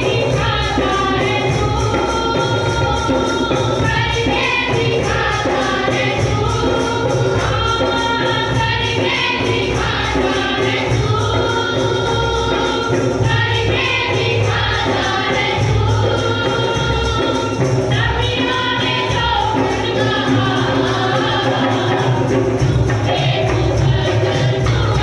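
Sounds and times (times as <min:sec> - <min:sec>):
group singing worship song: 0:00.0 - 0:25.0
jingling percussion beat: 0:00.0 - 0:25.0.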